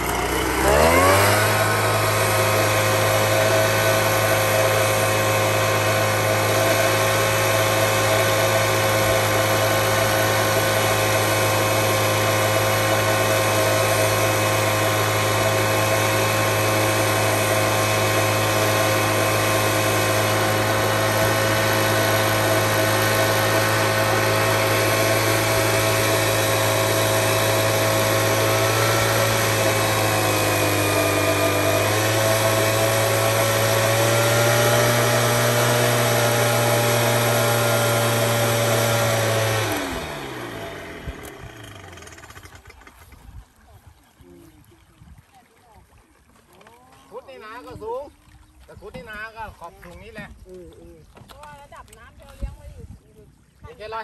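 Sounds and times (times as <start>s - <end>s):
mist blower engine running: 0.0s - 43.1s.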